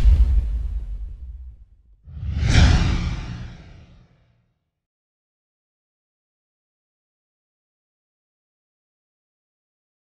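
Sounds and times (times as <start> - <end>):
deep low rumble: 0.9 - 4.0
whoosh sound effects: 2.1 - 4.0.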